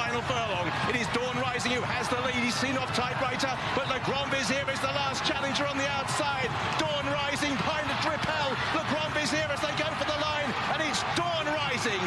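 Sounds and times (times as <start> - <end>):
man commentating excitedly: 0.0 - 12.0.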